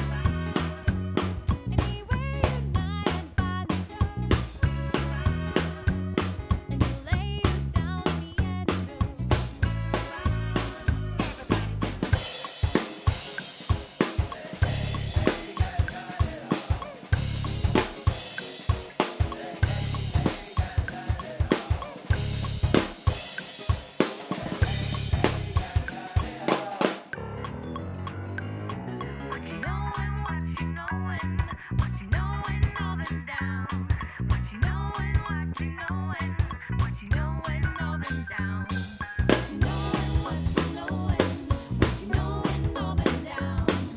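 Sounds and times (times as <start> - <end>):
drum kit beat: 0.0 - 27.2, 38.8 - 43.9
backing music with bass: 0.0 - 43.9.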